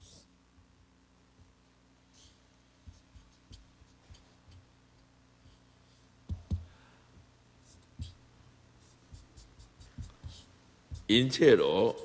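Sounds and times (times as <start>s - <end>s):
marker pen writing on paper: 2.2s - 4.7s, 7.6s - 8.2s, 8.8s - 11.3s.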